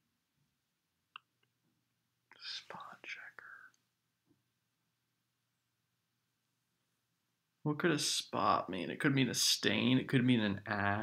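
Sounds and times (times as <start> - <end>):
whispered muttering: 2.3 - 3.8.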